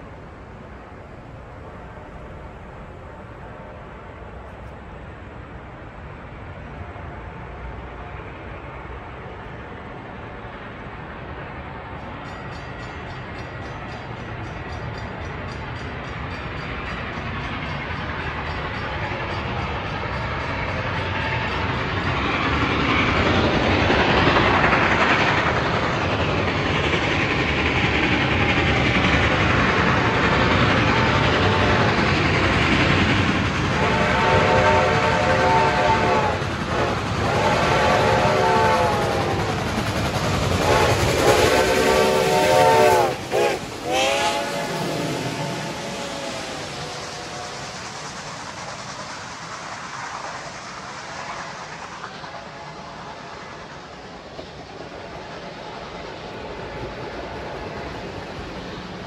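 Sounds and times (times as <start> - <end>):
steam locomotive running: 0.0 - 59.0
steam whistle blasts: 33.8 - 39.4, 40.6 - 47.5.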